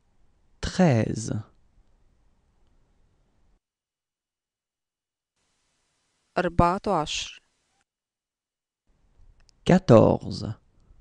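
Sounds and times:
faint low room hum: 0.0s - 3.6s, 5.4s - 7.9s, 8.9s - 11.0s.

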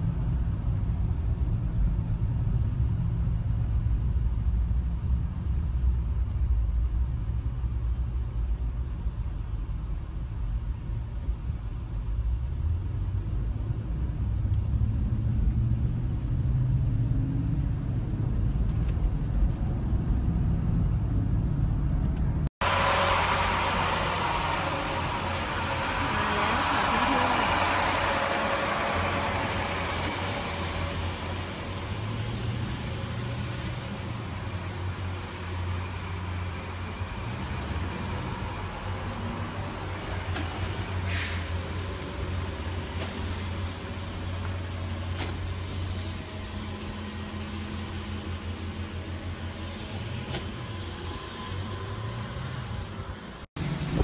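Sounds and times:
engine and road noise in vehicle: 0.0s - 54.0s.

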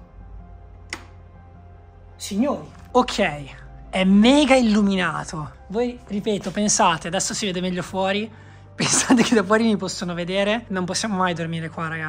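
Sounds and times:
quiet background music: 0.0s - 12.0s
wall light switch click: 0.9s - 1.2s.

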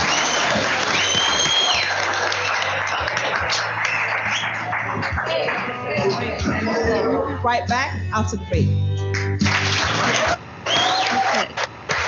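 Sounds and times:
studio audience applauding: 0.0s - 6.5s, 9.1s - 12.0s
television studio music: 0.0s - 12.0s.

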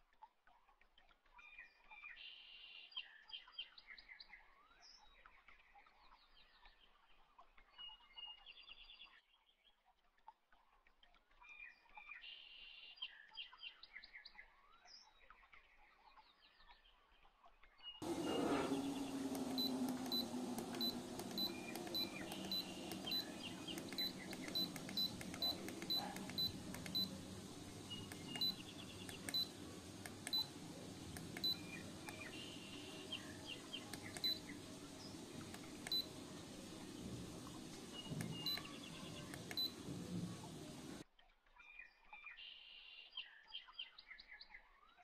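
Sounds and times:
faint bird-like chirps: 1.4s - 7.0s, 17.8s - 41.0s
high electronic beeps: 18.0s - 39.8s
steady noise: 18.0s - 41.0s.

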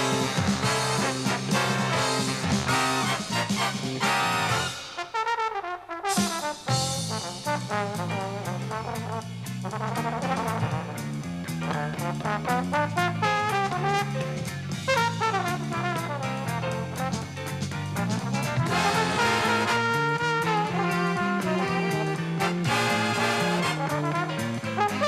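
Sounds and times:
walking electric bass line: 0.0s - 4.8s, 6.7s - 25.0s
drums: 0.0s - 25.0s
trombones and trumpets: 0.0s - 25.0s.

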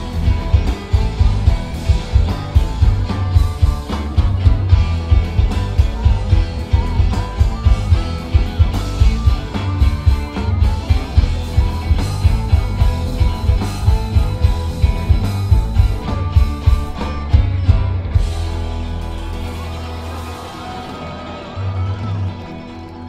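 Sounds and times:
bass guitar: 0.0s - 23.0s
drum kit beat: 0.0s - 23.0s
electric guitars: 0.0s - 23.0s.

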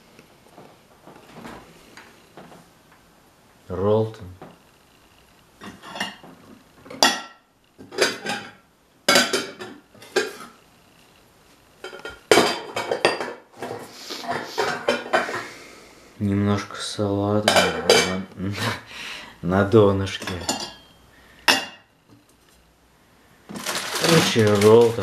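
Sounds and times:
dishes and cutlery clattering: 5.6s - 10.6s, 11.8s - 15.5s, 17.4s - 18.3s, 20.1s - 21.9s
man muttering: 18.3s - 18.9s.

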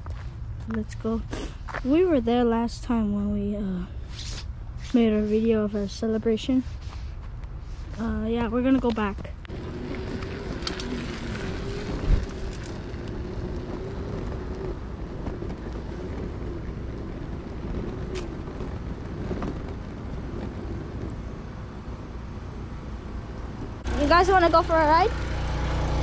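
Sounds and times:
wind rushing over microphone: 3.8s - 25.3s
bicycle tyres rolling on asphalt: 6.6s - 26.0s.

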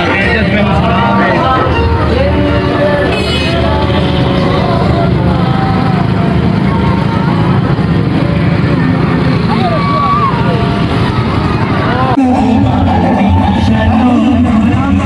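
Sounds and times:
people calling out: 0.0s - 8.6s, 9.4s - 15.0s
motorcycle engines passing: 0.0s - 15.0s.

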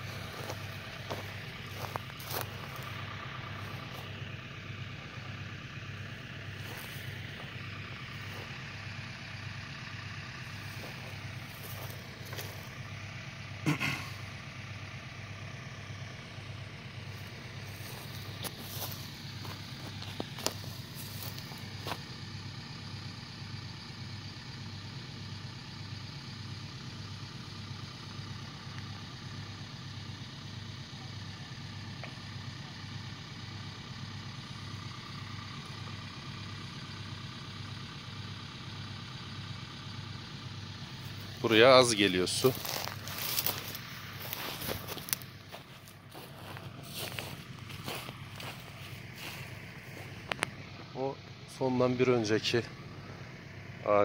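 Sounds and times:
engine idling: 0.0s - 54.0s.

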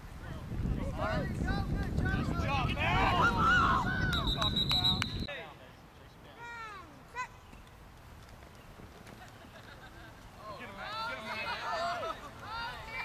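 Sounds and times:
wind buffeting microphone: 0.0s - 5.3s
referee's whistle: 4.0s - 5.3s.

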